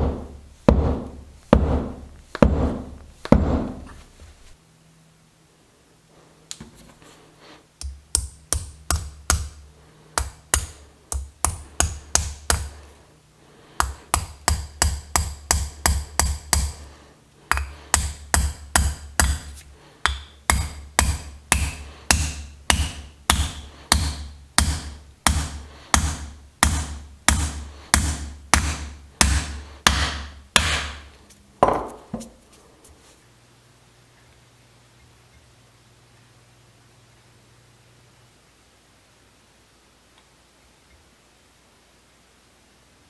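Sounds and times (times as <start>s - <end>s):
hammer striking metal wedge: 17.5s - 31.0s.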